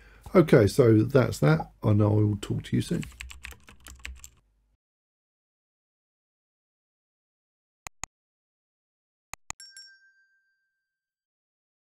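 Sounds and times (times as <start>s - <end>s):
mouse clicks: 7.9s - 8.1s, 9.4s - 9.6s
notification bell ding: 9.6s - 10.8s.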